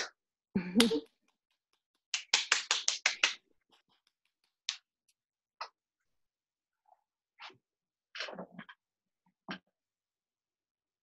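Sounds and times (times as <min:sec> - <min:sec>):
person clapping: 0:00.7 - 0:04.9.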